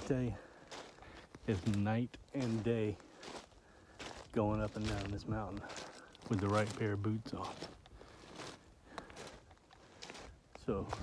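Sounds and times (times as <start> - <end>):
boots crunching on rocky ground: 0.0 - 11.0.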